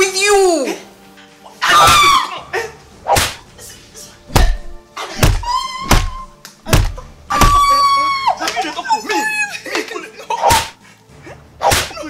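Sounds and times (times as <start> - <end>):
dull thuds of blows: 3.1 - 3.4, 4.3 - 7.7
woman crying out: 5.0 - 6.4, 7.0 - 9.7.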